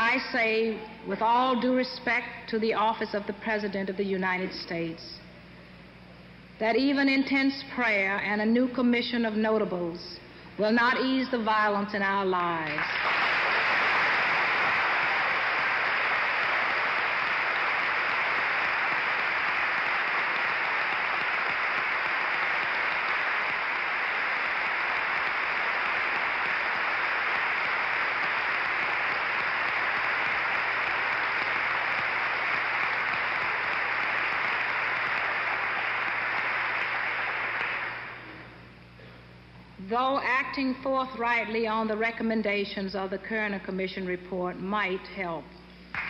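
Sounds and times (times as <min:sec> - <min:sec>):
audience applause: 0:12.8 - 0:38.3.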